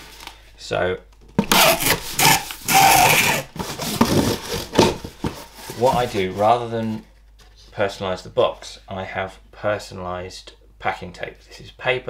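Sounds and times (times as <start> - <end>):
packing tape pulled from dispenser: 1.4 - 4.8
hand rubbing tape on cardboard: 1.5 - 6.6.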